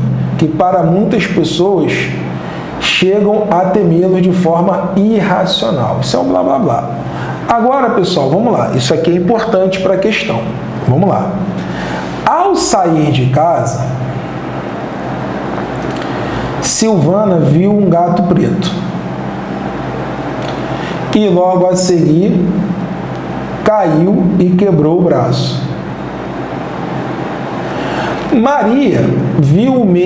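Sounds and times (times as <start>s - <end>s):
steady background hiss: 0.0s - 30.0s.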